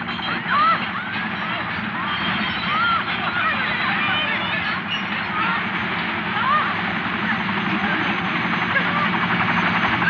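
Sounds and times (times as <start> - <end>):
crowd voices: 0.0 - 10.0
helicopter rotor and engine: 0.0 - 10.0.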